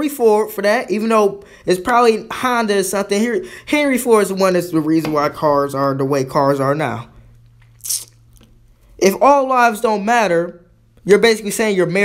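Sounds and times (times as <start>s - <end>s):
man breathing in: 3.4s - 3.7s.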